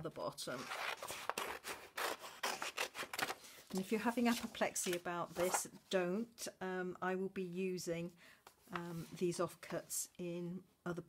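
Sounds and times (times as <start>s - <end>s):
scissors snipping paper: 0.7s - 3.4s
paper rustling: 0.7s - 5.7s.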